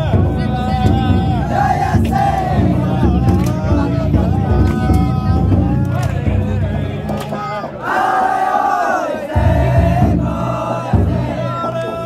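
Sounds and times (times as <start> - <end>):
young men shouting together: 0.0 - 12.0.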